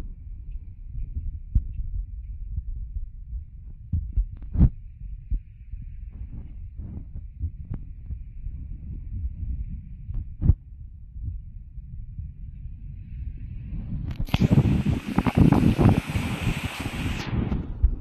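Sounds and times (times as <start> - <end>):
wind buffeting microphone: 0.0 - 18.0.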